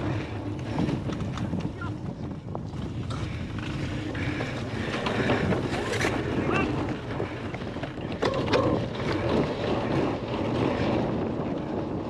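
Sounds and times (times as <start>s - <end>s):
bike tyres rolling on grass: 0.0s - 12.0s
wind buffeting microphone: 0.0s - 12.0s.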